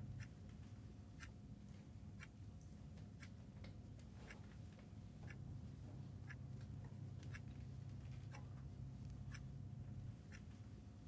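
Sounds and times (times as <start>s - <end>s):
low room hum: 0.0s - 11.0s
clock ticking: 5.2s - 5.5s, 6.2s - 9.6s, 10.2s - 10.5s.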